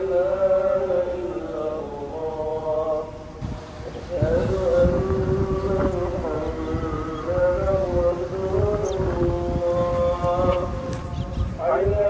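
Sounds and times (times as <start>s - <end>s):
call to prayer over loudspeaker: 0.0s - 12.0s
wind rumbling on microphone: 0.0s - 12.0s.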